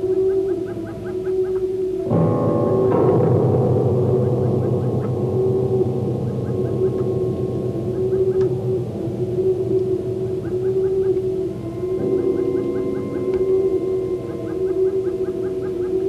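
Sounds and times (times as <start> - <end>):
synthesizer drones: 1.8 - 16.0
low hum: 2.1 - 16.0.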